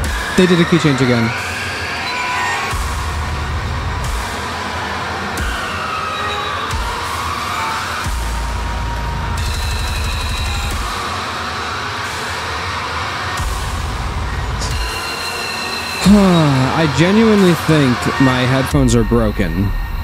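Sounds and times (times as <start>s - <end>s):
metal music with distorted guitars: 1.3s - 18.4s.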